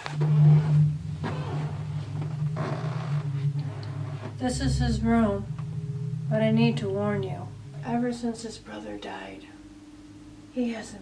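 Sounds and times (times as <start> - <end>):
low droning hum: 0.0 - 11.0.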